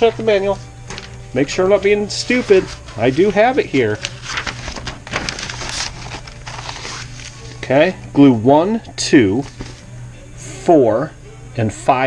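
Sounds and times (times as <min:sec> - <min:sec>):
paper pages rustling: 0:00.9 - 0:01.2, 0:02.2 - 0:07.6, 0:09.4 - 0:09.9
low hum: 0:04.0 - 0:08.2.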